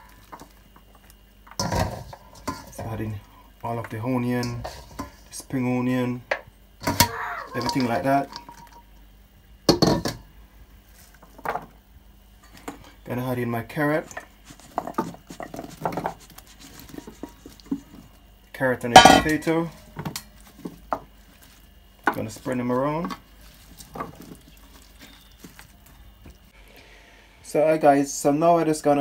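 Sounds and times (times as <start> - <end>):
metallic kitchenware clank: 6.8 - 8.9, 18.9 - 19.5.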